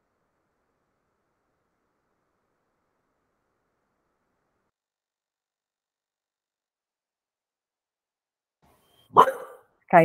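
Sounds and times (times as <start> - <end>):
dog barking: 9.1 - 9.7.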